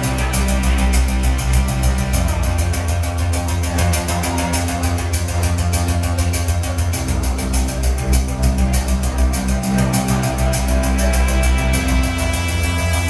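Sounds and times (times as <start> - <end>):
fast ticking beat: 0.0 - 13.0
held bass notes: 0.0 - 13.0.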